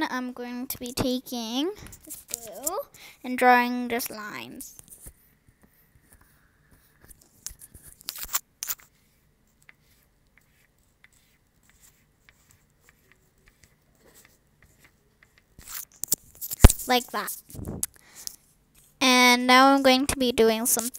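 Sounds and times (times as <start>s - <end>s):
oil pastel scratching on paper: 2.0s - 2.7s, 6.2s - 17.6s.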